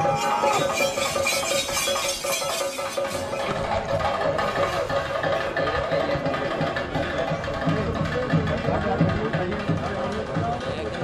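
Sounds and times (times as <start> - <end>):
cymbals: 0.0 - 5.0
fast drumming: 0.0 - 11.0.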